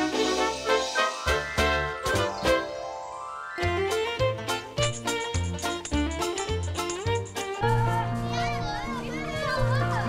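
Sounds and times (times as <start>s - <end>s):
background music: 0.0s - 10.0s
children chattering and calling: 7.6s - 10.0s.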